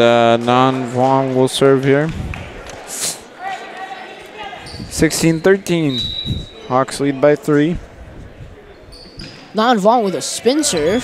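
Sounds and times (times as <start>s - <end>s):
faint voices in a hall: 0.0s - 11.0s.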